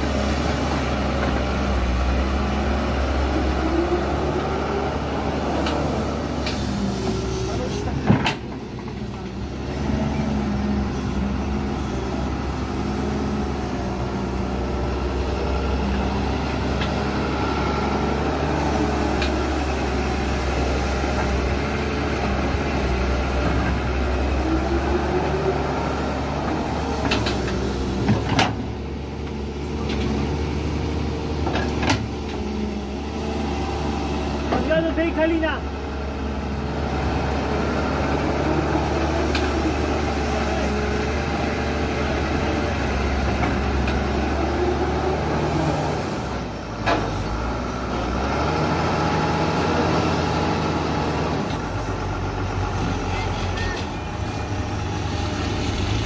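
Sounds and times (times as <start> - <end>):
excavator diesel engine running: 0.0 - 56.0.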